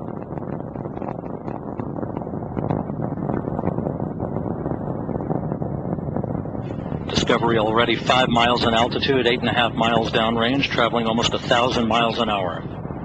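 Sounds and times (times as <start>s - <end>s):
rocket engines rumbling: 0.0s - 13.0s.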